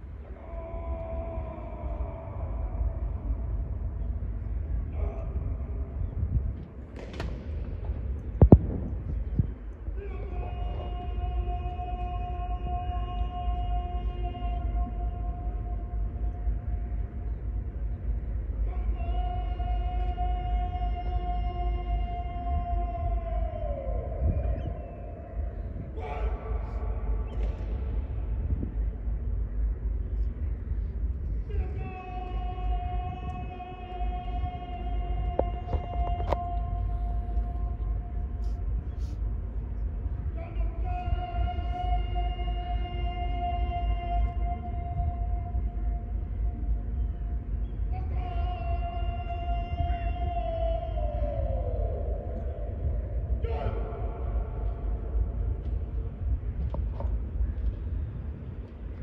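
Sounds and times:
wind rumble on microphone: 0.0 - 59.0.

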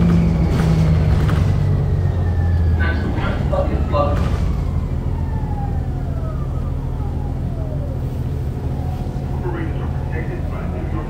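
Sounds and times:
diesel engine drone: 0.0 - 11.0.

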